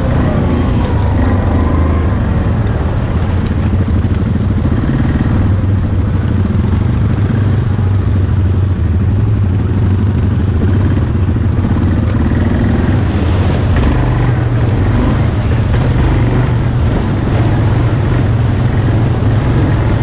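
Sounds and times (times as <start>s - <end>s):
atv engine running: 0.0s - 20.0s.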